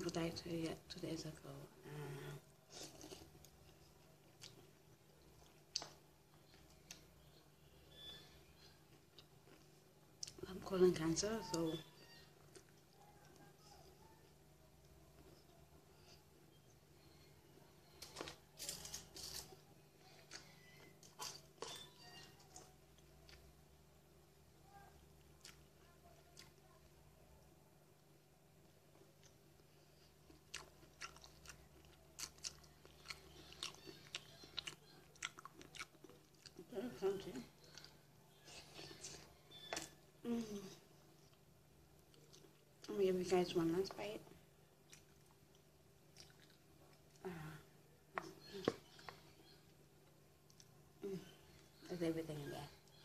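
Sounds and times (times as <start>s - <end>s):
crunchy cereal chewing: 29.2s - 36.7s, 44.9s - 47.2s.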